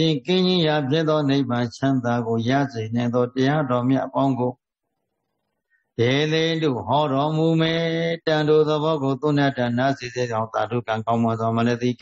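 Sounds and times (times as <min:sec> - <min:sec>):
man chanting: 0:00.0 - 0:04.7, 0:06.0 - 0:12.0.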